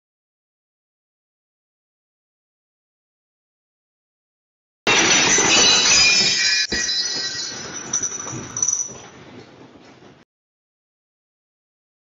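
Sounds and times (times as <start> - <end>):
room rattling and clattering: 4.9 - 10.3.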